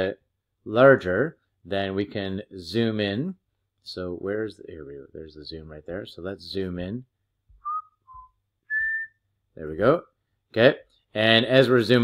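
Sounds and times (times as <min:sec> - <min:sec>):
person whistling short notes: 0:07.6 - 0:09.3.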